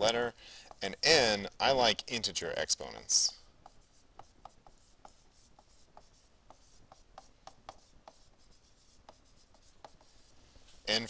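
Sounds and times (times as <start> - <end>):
stylus tapping on tablet screen: 3.6 - 10.2.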